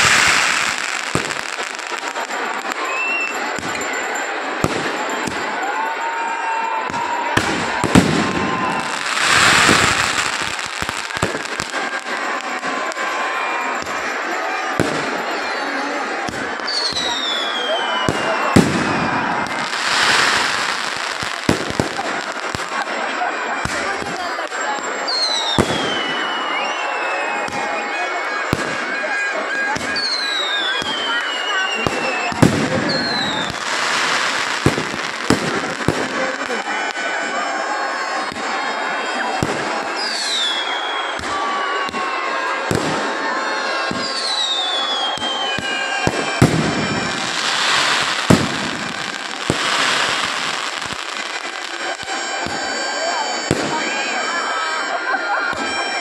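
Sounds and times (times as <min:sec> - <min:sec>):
firework bangs: 0:00.0 - 0:26.7, 0:27.3 - 0:56.0
crowd noise: 0:00.0 - 0:56.0
whistling fireworks: 0:00.0 - 0:56.0.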